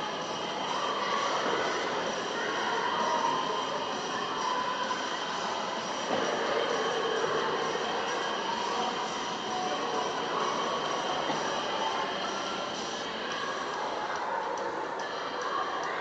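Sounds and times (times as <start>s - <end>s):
echoing swimming pool water: 0.0s - 16.0s.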